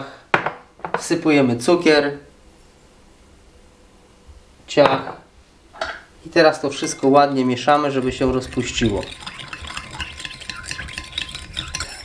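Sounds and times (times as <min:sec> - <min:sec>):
teaspoon clinking in ceramic bowl: 0:06.8 - 0:12.0.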